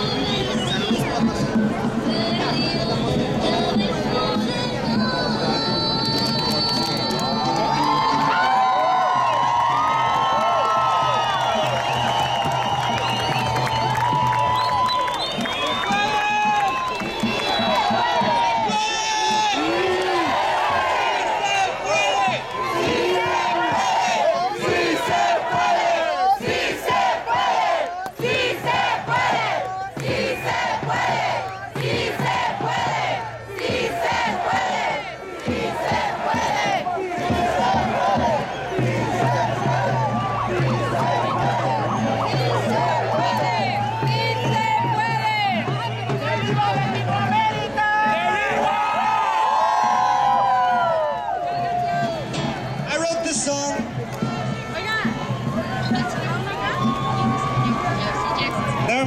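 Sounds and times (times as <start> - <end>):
crowd shouting and cheering: 0.0 - 59.0.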